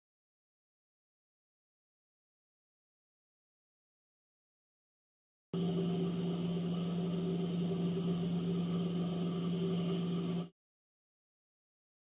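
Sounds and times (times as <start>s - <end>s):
sewing machine motor hum: 5.6s - 10.5s.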